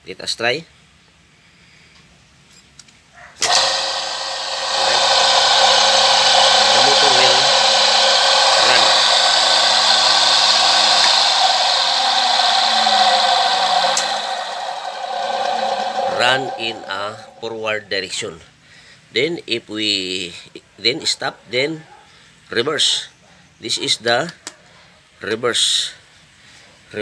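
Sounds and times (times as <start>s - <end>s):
electric motor whirring: 3.4s - 17.5s.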